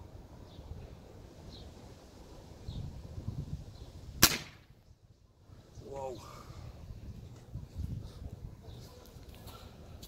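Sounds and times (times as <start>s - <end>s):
air rifle shot: 4.2s - 4.7s.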